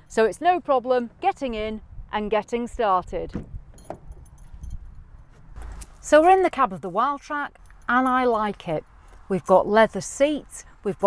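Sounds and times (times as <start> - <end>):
short rustle: 4.2 - 6.2.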